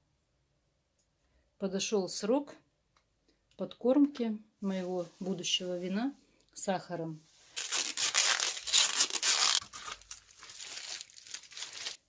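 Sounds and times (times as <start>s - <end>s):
adhesive tape tearing: 7.6s - 12.0s.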